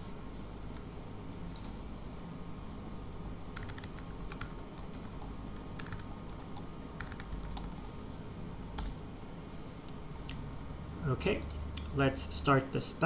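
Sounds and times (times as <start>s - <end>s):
low steady hum: 0.0s - 13.0s
computer keyboard typing: 3.6s - 7.9s, 8.8s - 9.0s.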